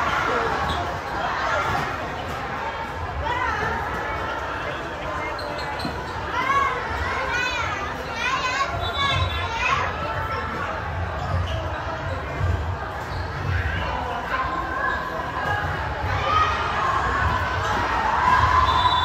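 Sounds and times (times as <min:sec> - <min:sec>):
children calling and chanting: 0:00.0 - 0:19.0.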